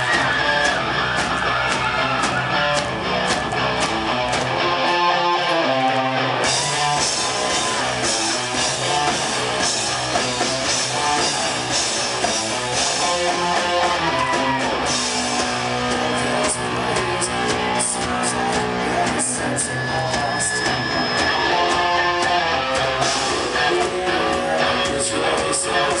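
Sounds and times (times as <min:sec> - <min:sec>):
live hard rock band: 0:00.0 - 0:26.0.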